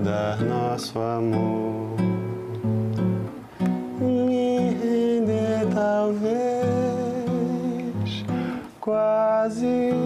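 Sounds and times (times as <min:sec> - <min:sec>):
classical guitar chords: 0:00.0 - 0:10.0.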